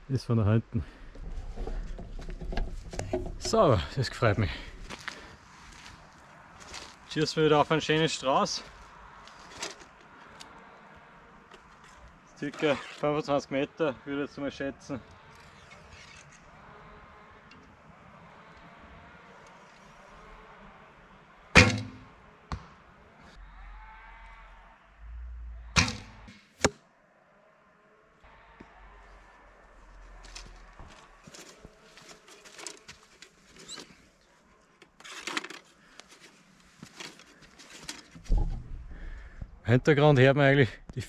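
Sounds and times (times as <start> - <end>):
rustling: 29.3 - 39.4.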